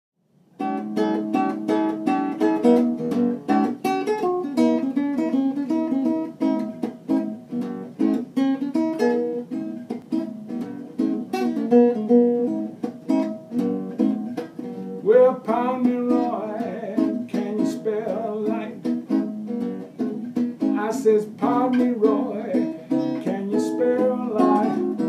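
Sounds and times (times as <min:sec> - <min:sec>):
acoustic guitar strumming chords: 0:00.6 - 0:25.0.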